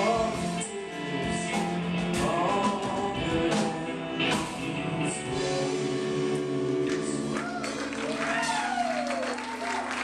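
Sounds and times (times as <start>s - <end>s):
audience whooping and cheering: 7.0s - 10.0s.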